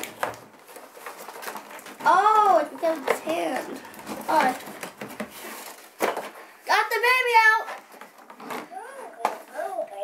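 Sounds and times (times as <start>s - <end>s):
child making wordless vocal sounds: 8.7s - 10.0s.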